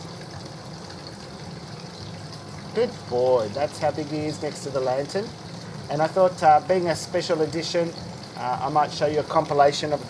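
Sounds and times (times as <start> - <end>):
low steady hum: 0.0 - 10.0
water trickling from spout: 0.0 - 10.0.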